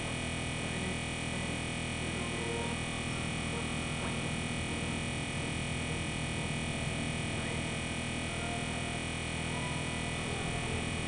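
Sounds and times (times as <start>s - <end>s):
synthesizer drone: 0.0s - 11.0s.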